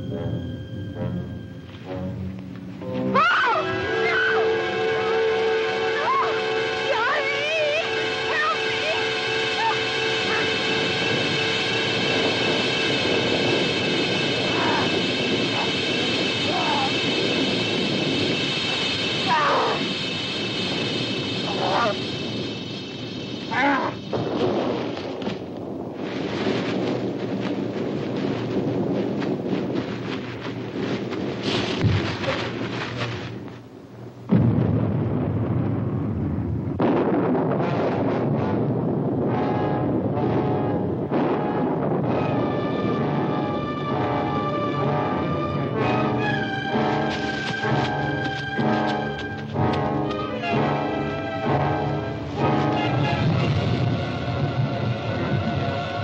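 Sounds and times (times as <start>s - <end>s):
orchestral music with brass chords: 0.0s - 16.4s, 39.2s - 56.0s
tense music: 0.0s - 36.8s, 38.0s - 56.0s
woman screaming: 3.1s - 4.5s, 6.0s - 10.6s
loud crash: 34.3s - 39.3s.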